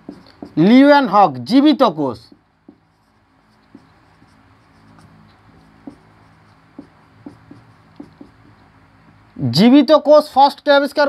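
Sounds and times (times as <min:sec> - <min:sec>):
marker pen writing on whiteboard: 0:00.0 - 0:08.8
low steady hum: 0:00.0 - 0:09.8.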